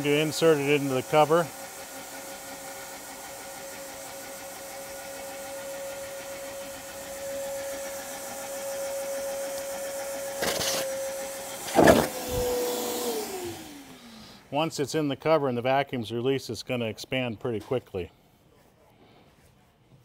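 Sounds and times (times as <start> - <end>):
vacuum cleaner whine: 0.0 - 14.5.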